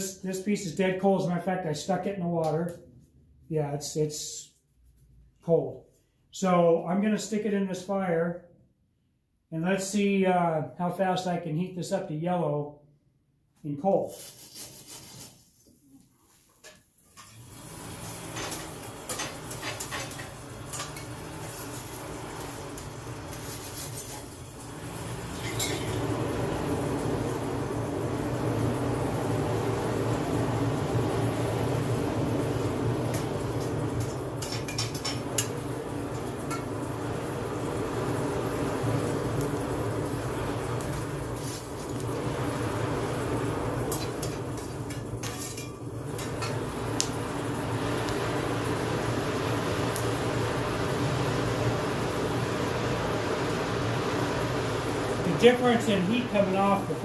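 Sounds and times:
forge blower rushing: 17.4 - 57.0.

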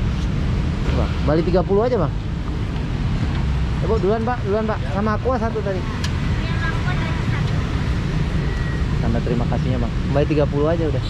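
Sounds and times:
low rumble of street traffic: 0.0 - 11.0.

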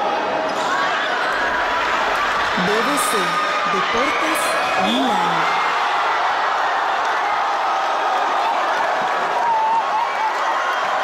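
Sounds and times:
basketball play on court: 0.0 - 10.8
crowd of spectators: 0.0 - 11.0.

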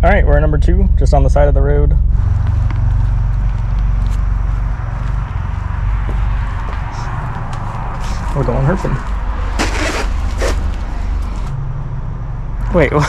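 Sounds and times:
car engine running: 0.0 - 13.0
road and cabin noise: 0.0 - 13.0.

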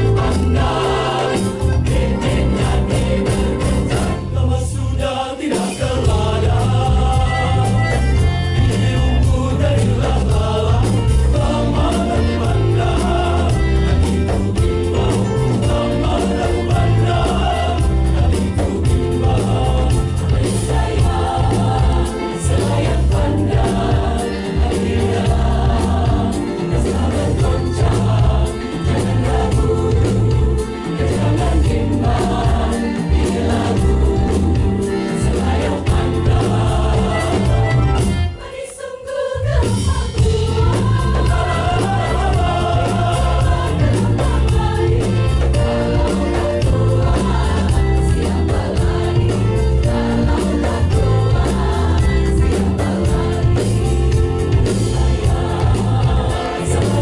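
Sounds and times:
band accompaniment with bass beat: 0.0 - 4.5, 5.5 - 38.5, 39.5 - 57.0
mixed choir singing: 0.0 - 57.0.

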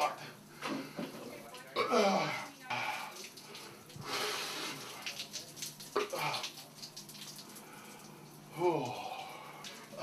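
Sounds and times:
shower water splashing: 0.0 - 10.0.

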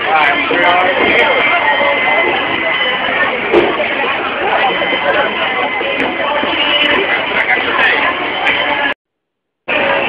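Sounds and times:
crowd chatter: 0.0 - 9.0, 9.7 - 10.0.

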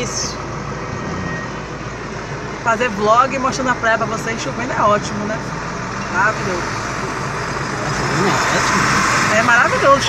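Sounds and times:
low engine hum: 0.0 - 10.0
tyres on wet road: 0.0 - 10.0.

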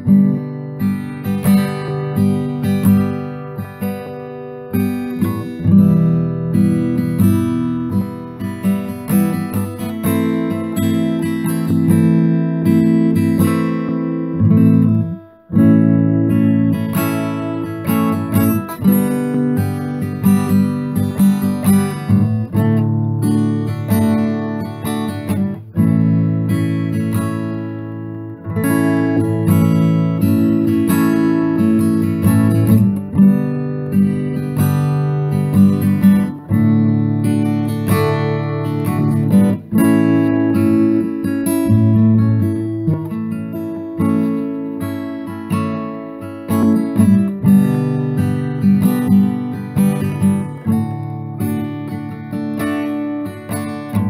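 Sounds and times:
acoustic guitar strumming chords: 0.0 - 54.0.

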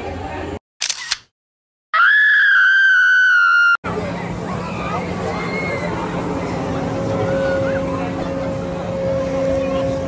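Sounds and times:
outdoor crowd murmur: 0.0 - 0.6, 3.8 - 10.0
shrill high-pitched scream: 2.0 - 3.8.

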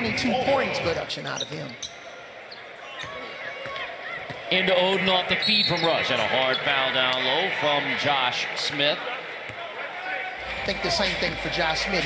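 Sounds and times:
faint arena background noise: 0.0 - 12.0.

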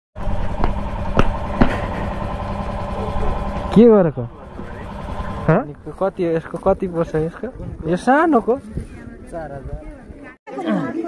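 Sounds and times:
motorcycle engine idling: 0.2 - 7.3.

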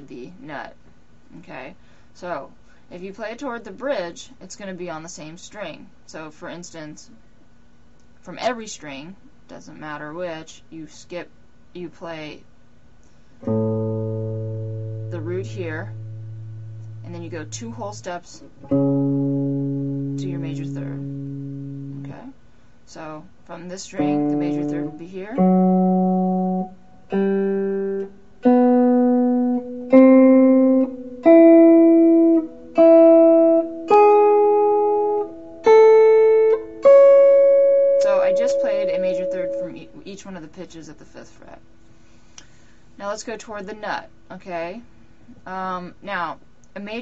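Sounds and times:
electric guitar low note ringing: 13.4 - 22.2, 24.0 - 40.0.

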